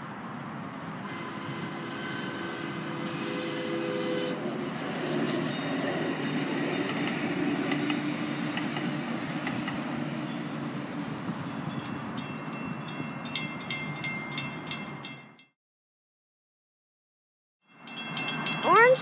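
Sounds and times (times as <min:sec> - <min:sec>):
train rumble: 0:00.0 - 0:15.4
train wheels clicking over rails: 0:03.8 - 0:10.9
crossing bell ringing: 0:05.3 - 0:15.6, 0:17.6 - 0:19.0.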